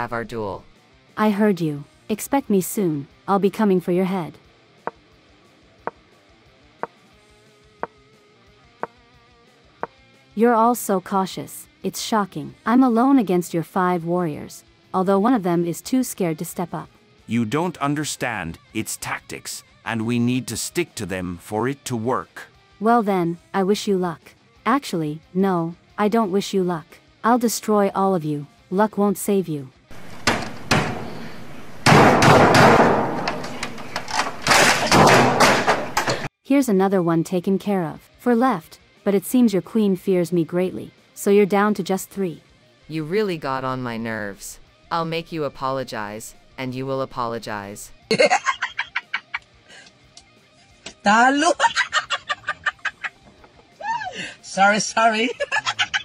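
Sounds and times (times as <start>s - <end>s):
quiet background music: 0.0s - 56.0s
crashing blows on computer hardware: 30.0s - 36.3s
sharp knocks on computer: 30.1s - 33.7s.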